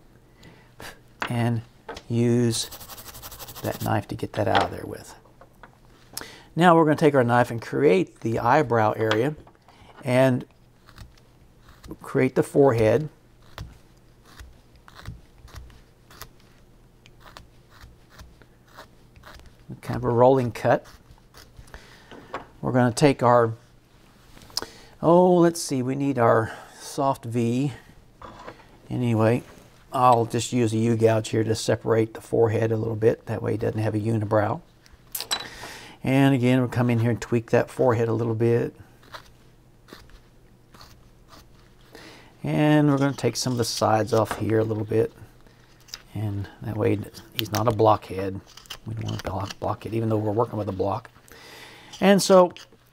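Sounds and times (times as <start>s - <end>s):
knife shaving wood: 2.6s - 4.1s, 10.6s - 21.8s, 38.9s - 41.8s.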